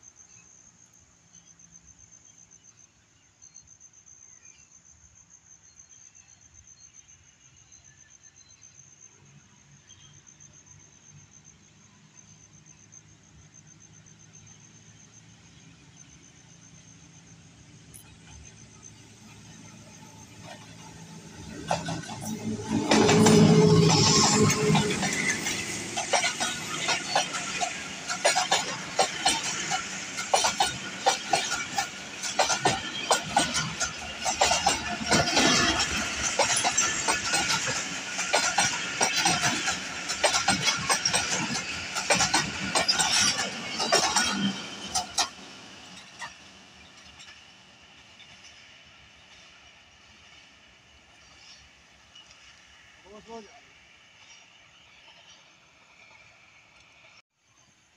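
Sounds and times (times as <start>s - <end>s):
diesel locomotive engine: 9.2s - 57.2s
train wheels clattering over rail joints: 17.8s - 49.5s.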